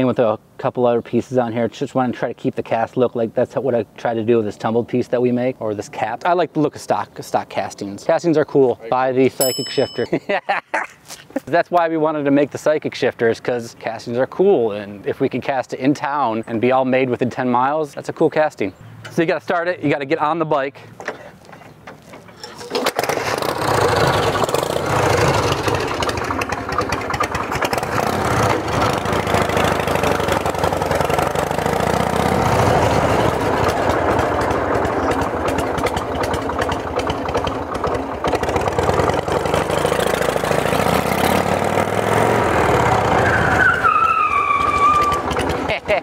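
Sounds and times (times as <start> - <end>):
motorcycle kickstarted and running: 21.0 - 43.6, 44.6 - 46.0.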